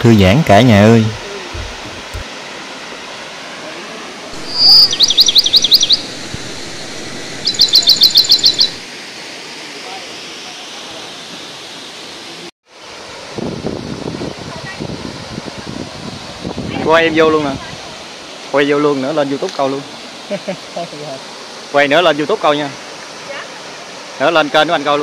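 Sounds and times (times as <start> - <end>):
waterfall rushing: 0.6 - 25.0
bird singing rapid high notes: 4.4 - 6.1, 7.4 - 8.8.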